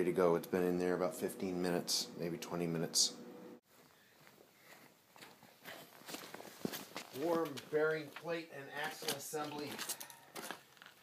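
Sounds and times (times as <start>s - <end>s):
footsteps on outdoor ground: 3.7s - 11.0s.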